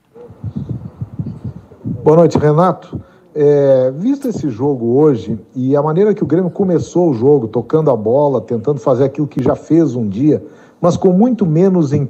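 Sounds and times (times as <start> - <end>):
microphone handling bumps: 0.0 - 3.2, 4.1 - 4.7.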